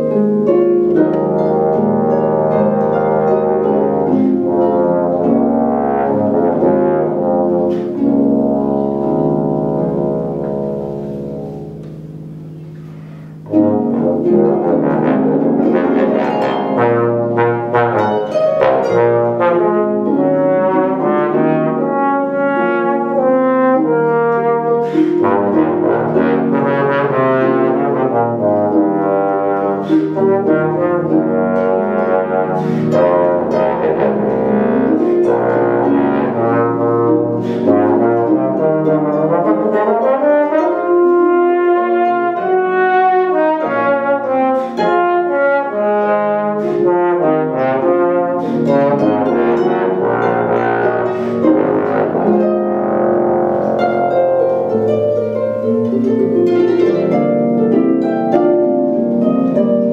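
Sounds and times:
bass trombone playing notes: 0:00.0 - 0:59.9
harp accompaniment: 0:00.0 - 0:59.9.

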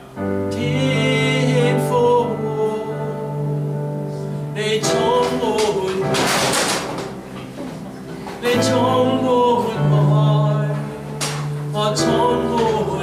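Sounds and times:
electronic keyboard chords: 0:00.0 - 0:13.0
man singing: 0:00.3 - 0:07.2, 0:08.3 - 0:13.0.

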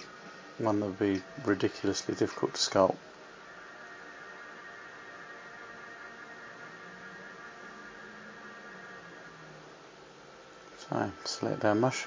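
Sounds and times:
faint hum: 0:00.0 - 0:12.0
steady low hiss: 0:00.0 - 0:12.0.

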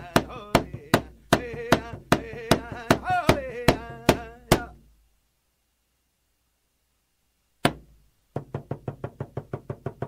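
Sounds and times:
fast even drumbeat: 0:00.1 - 0:04.8.

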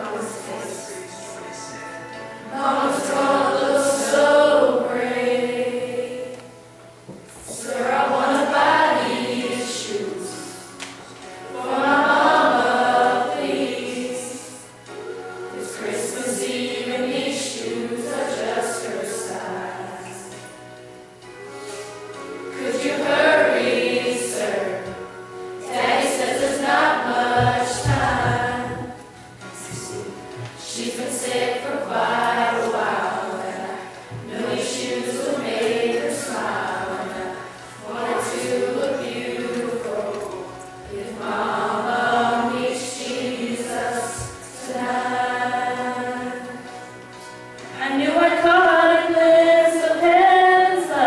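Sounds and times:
youth choir singing: 0:00.0 - 0:51.0.

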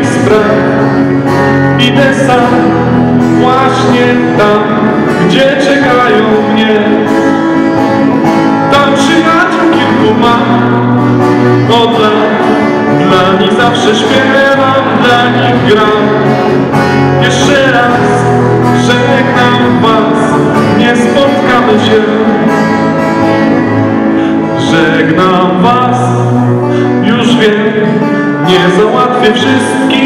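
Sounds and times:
man singing into microphone: 0:00.0 - 0:23.5, 0:24.2 - 0:30.0
acoustic guitar: 0:00.0 - 0:30.0
live band playing: 0:00.0 - 0:30.0.

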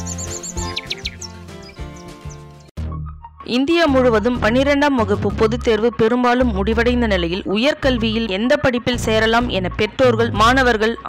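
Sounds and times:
bird chirps: 0:00.0 - 0:02.7
instrumental music: 0:00.0 - 0:05.7.

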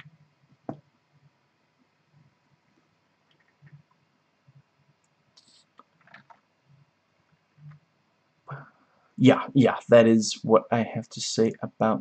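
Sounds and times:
soft hiss: 0:00.0 - 0:12.0
faint clicks: 0:03.2 - 0:06.5.

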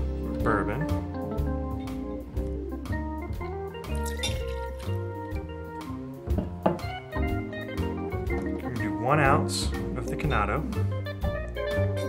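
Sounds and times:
plucked string music with bass: 0:00.0 - 0:12.0
liquid pouring: 0:03.9 - 0:05.2.

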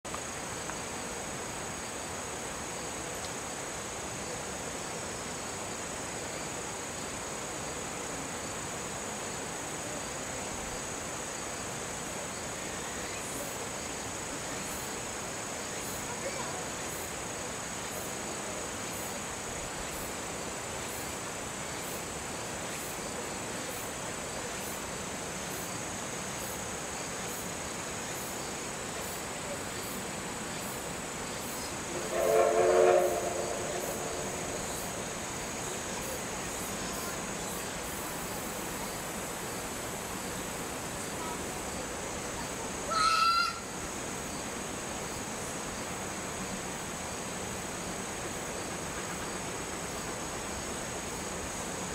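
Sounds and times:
insects trilling: 0:00.1 - 0:51.9
insect high chirps: 0:26.4 - 0:41.8.

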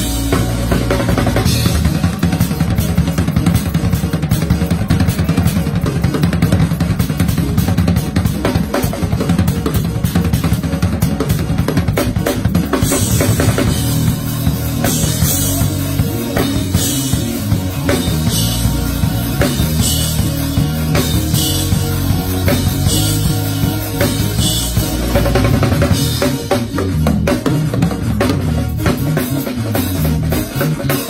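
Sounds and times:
low accompaniment: 0:00.0 - 0:30.9
drum kit fills on snare and toms: 0:00.0 - 0:31.0.

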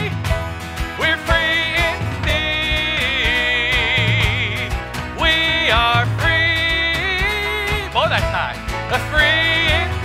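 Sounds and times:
band playing country-style song: 0:00.0 - 0:10.0.

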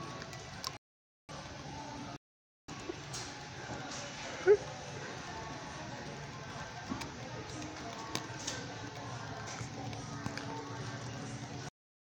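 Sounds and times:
store background music: 0:00.0 - 0:11.7
store hum: 0:00.0 - 0:11.7
murmur of voices: 0:01.7 - 0:11.7.

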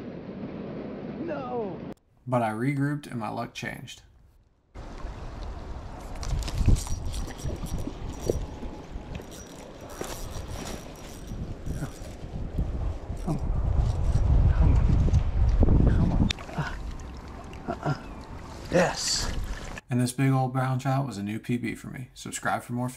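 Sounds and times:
wind rumbling on microphone: 0:04.8 - 0:19.8
handling knocks and clicks: 0:06.0 - 0:12.2.

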